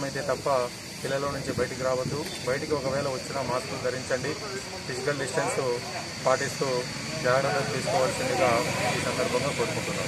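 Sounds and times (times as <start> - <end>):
background hiss: 0.0 - 10.0
man speaking: 0.0 - 10.0.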